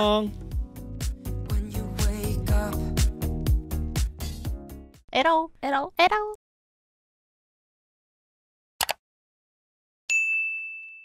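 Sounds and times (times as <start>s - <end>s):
bell-like chime ding: 10.1s - 11.0s.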